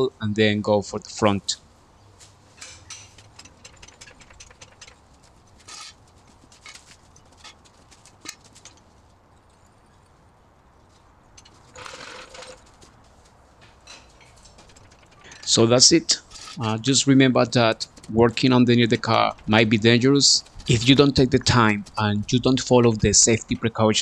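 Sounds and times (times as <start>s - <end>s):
metal jack clicks and knocks: 2.6s - 6.0s.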